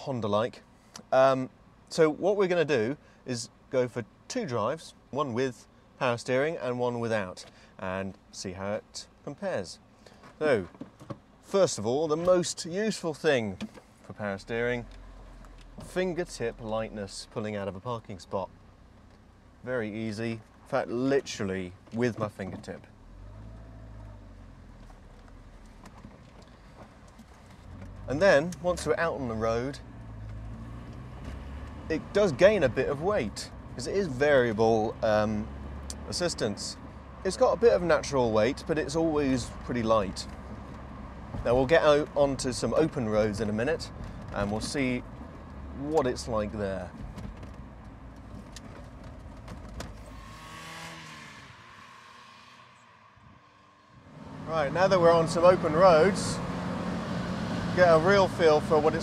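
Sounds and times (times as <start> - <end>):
car engine low hum: 0.0 - 59.0.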